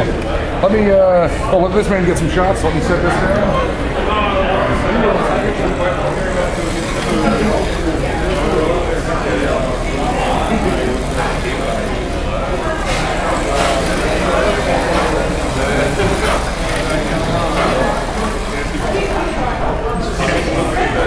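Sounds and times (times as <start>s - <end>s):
indistinct chatter of people: 0.0s - 21.0s.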